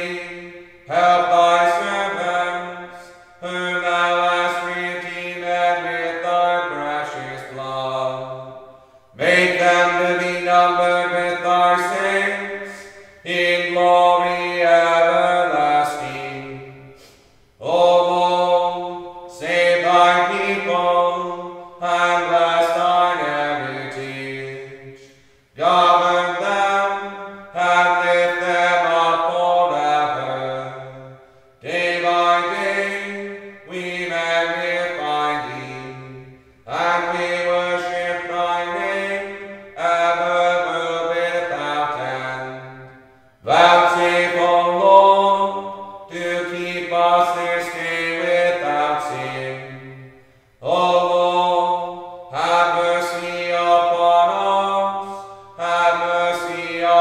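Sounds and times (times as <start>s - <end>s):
liturgical chant: 0.0s - 57.0s.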